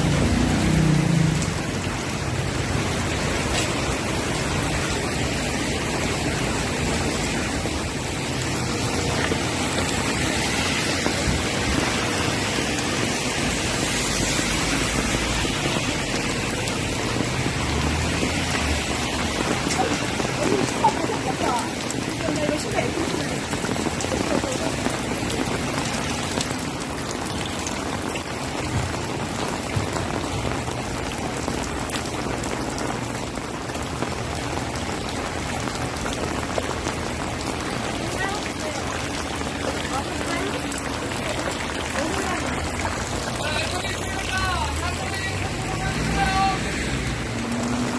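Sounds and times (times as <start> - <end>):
rain falling on street: 0.0 - 47.9
faint voices of passers-by: 8.4 - 27.4, 37.6 - 47.9.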